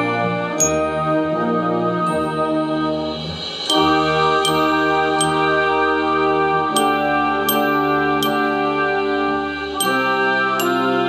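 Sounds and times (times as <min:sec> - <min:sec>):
glockenspiel notes: 0:00.0 - 0:11.0
held chords: 0:00.0 - 0:11.0.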